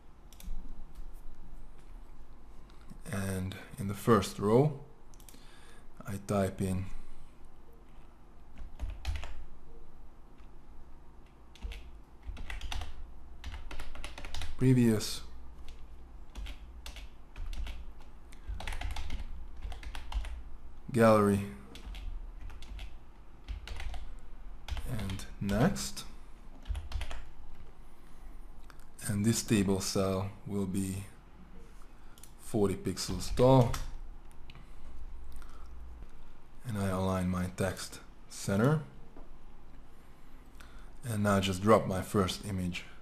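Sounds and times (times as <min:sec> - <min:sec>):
typing on computer keyboard: 0:08.6 - 0:09.4, 0:11.5 - 0:14.6, 0:15.6 - 0:20.4, 0:21.7 - 0:25.6, 0:26.6 - 0:27.3.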